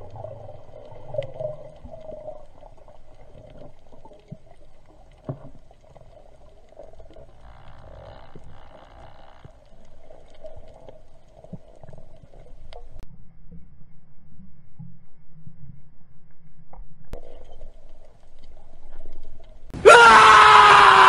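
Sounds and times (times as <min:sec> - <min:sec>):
muffled underwater rumble: 0:00.0 - 0:19.7
low pulse: 0:12.4 - 0:18.0.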